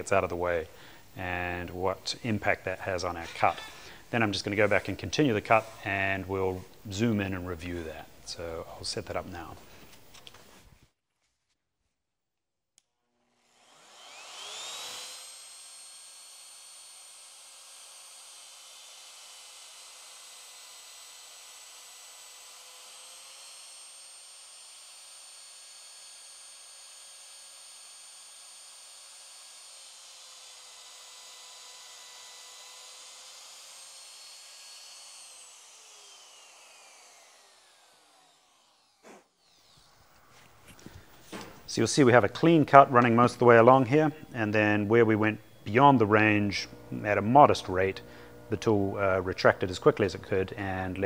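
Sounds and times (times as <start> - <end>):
router bit cutting wood: 0.0 - 10.1, 13.0 - 51.0
router spindle whine: 13.1 - 51.0.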